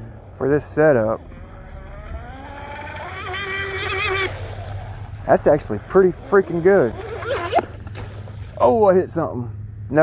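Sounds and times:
electric motor and propeller whine: 0.0 - 10.0.

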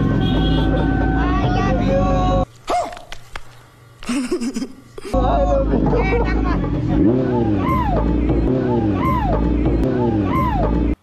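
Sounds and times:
motorcycle engine running: 5.4 - 11.0.

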